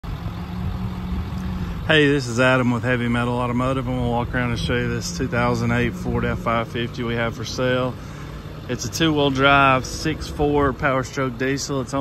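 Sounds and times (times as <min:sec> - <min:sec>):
diesel engine idling: 0:00.0 - 0:12.0
man talking: 0:01.8 - 0:12.0.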